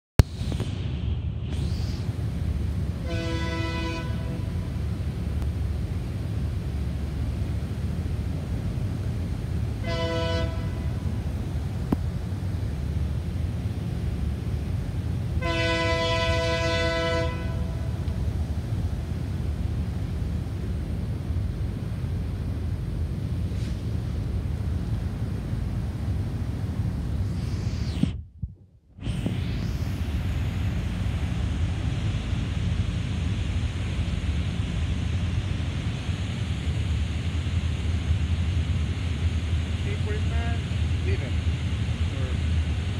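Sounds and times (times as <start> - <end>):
low rumble: 0.2 - 15.5, 16.2 - 42.9
locomotive air horn: 3.0 - 4.7, 9.8 - 11.1, 15.4 - 17.9.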